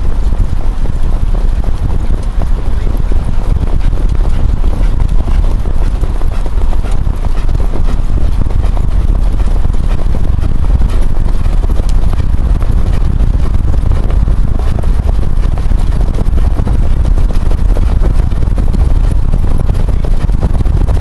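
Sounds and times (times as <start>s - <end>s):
car engine rumble: 0.0s - 21.0s
horse hoofbeats clattering: 0.1s - 21.0s.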